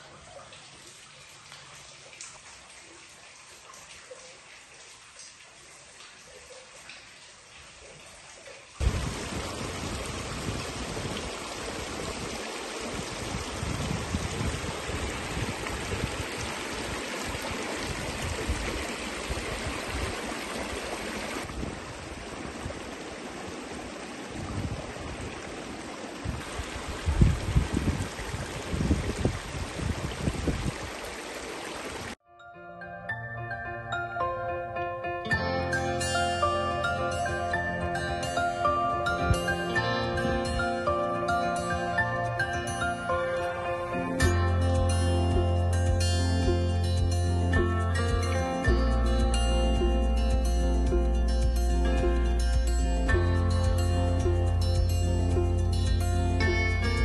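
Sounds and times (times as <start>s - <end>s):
creek trickling over rocks: 0.0s - 32.2s, 36.0s - 57.0s.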